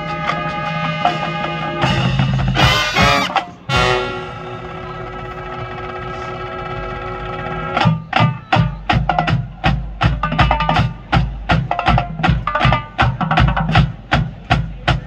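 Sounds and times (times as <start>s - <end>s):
snare drumline run: 0.0s - 4.3s, 7.5s - 15.0s
marching band horns chord: 0.0s - 8.0s.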